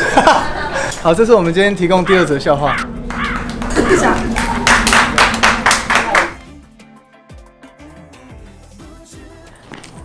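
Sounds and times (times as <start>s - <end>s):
background music: 1.2s - 10.0s
sharp hand claps: 3.0s - 6.4s.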